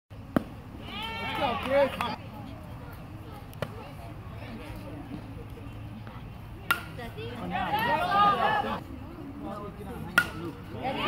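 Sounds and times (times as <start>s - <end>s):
faint distant voices: 0.2s - 11.0s.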